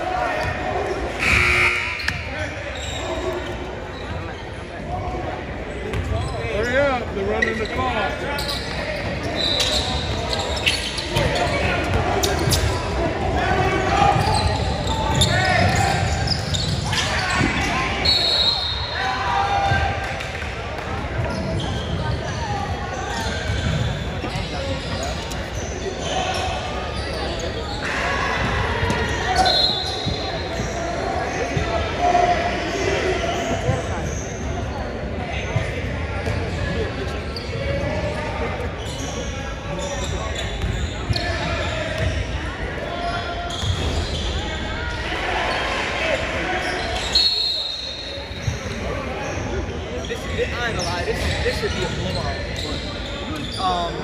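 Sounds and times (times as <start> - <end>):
voices echoing in hall: 0.0 - 54.0.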